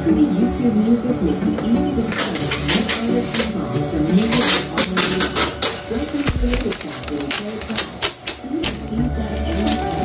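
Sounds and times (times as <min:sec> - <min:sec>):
plastic film peeling crackles: 0:02.1 - 0:10.0.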